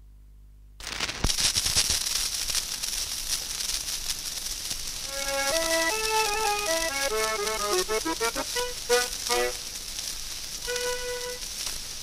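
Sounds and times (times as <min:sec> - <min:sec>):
record surface hiss and crackle: 0:00.0 - 0:12.0.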